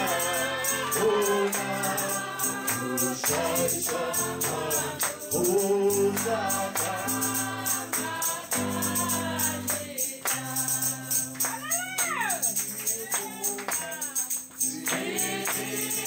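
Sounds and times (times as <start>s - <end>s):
man singing into a microphone: 0.0s - 7.3s
congregation singing along: 0.0s - 11.7s, 12.5s - 16.0s
tambourine beat: 0.0s - 16.0s.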